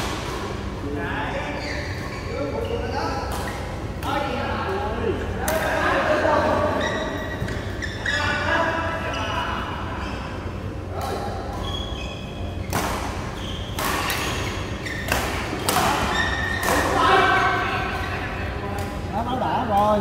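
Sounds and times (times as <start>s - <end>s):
racket hitting shuttlecock: 12.6s - 17.0s.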